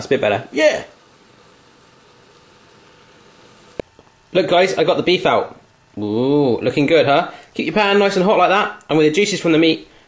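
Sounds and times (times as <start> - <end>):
faint hiss: 0.0 - 10.0
faint hum tone: 0.0 - 10.0.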